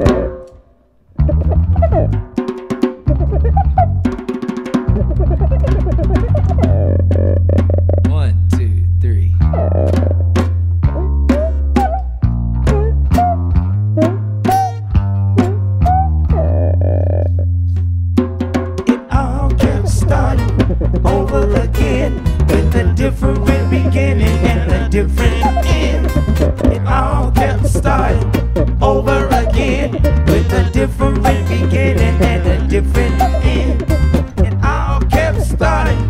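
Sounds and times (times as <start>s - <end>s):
acoustic bass guitar low notes: 0.0s - 36.0s
djembe: 1.2s - 7.9s, 18.2s - 36.0s
hand drum played with fingers: 1.2s - 8.1s, 9.4s - 36.0s
acoustic guitars strummed and picked: 18.3s - 36.0s.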